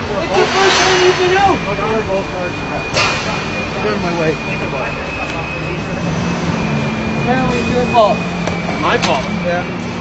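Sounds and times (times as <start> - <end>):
men shouting and arguing: 0.0 - 2.8.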